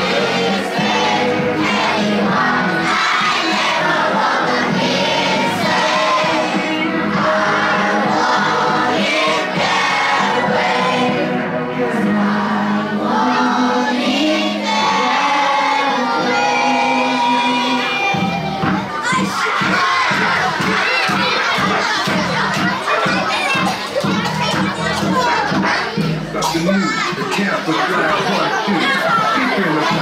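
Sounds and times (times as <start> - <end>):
backing track music: 0.0 - 30.0
children shouting and cheering: 0.0 - 30.0
children singing in unison: 0.0 - 30.0.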